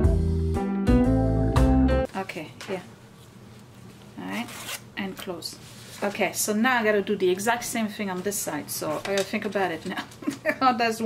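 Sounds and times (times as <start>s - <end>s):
zipper rasp: 4.3s - 4.8s.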